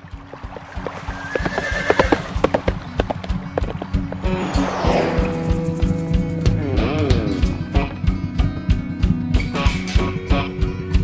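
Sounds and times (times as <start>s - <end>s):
horse hoofbeats: 0.0s - 4.4s
horse whinny: 0.9s - 3.0s
steady low tone: 4.0s - 8.6s.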